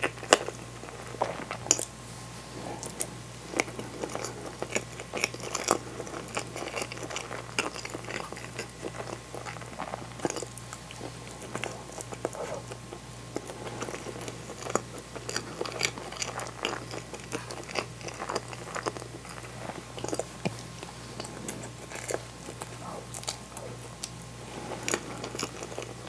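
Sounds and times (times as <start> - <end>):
chewing and wet mouth sounds: 0.0 - 26.0.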